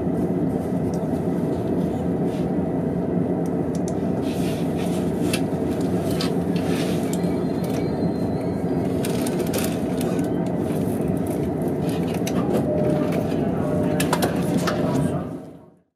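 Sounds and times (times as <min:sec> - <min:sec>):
train cabin noise: 0:00.0 - 0:15.8
indistinct passenger voices: 0:00.0 - 0:15.9.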